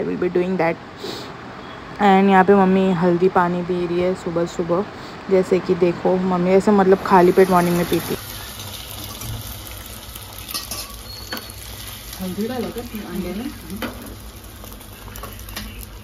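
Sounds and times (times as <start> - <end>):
egg frying sizzle: 6.9 - 16.0.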